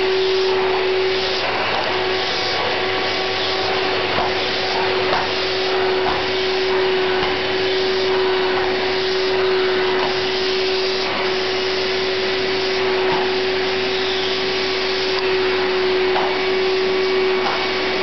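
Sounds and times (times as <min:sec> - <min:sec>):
vacuum cleaner running: 0:00.0 - 0:18.0.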